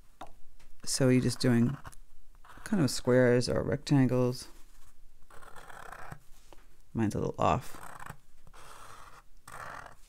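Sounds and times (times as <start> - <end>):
marker scratching on paper: 0.9 - 3.4, 4.4 - 6.4, 7.7 - 10.0.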